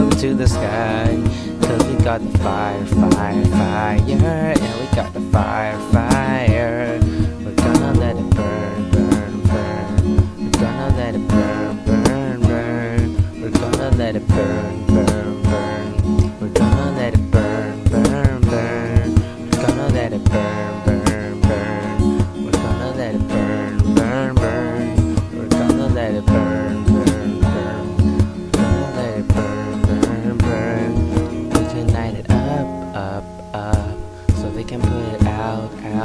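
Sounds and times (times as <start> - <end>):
acoustic guitar strumming: 0.0 - 36.0
man singing: 0.0 - 36.0.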